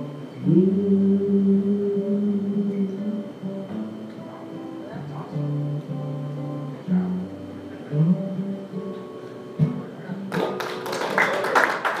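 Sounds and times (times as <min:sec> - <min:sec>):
acoustic guitar notes: 0:00.0 - 0:10.9
audience applauding: 0:10.3 - 0:12.0.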